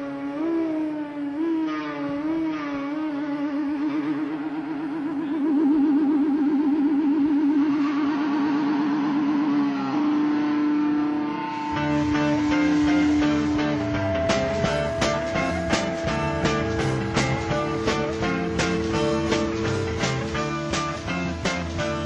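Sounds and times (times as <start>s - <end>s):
electric guitar sustained note: 0.0s - 22.0s
rhythmic bass line: 3.1s - 22.0s.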